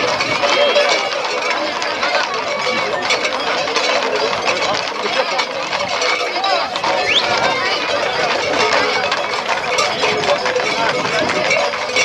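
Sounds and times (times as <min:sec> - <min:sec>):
crowd talking and shouting: 0:00.0 - 0:12.0
hooves clattering on road: 0:00.0 - 0:12.0.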